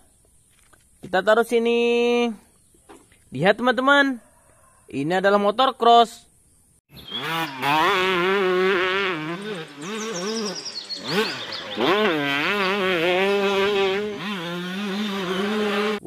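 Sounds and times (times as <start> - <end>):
dirt bike engine revving: 6.9 - 16.0.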